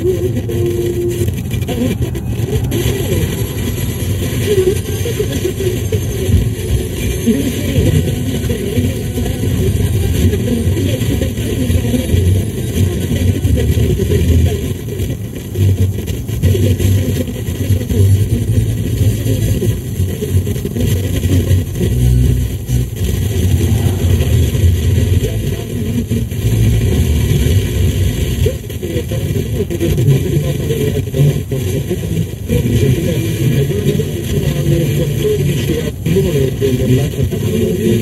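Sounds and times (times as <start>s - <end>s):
car road and engine noise: 0.0s - 30.2s.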